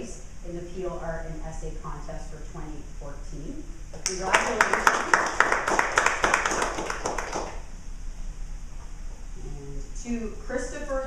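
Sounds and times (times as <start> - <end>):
small group clapping: 4.0 - 7.6.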